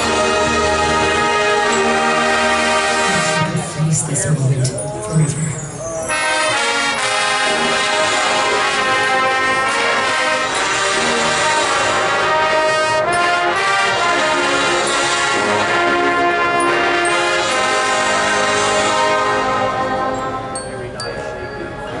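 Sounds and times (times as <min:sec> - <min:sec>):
brass band playing held chords: 0:00.0 - 0:05.4, 0:06.0 - 0:20.9.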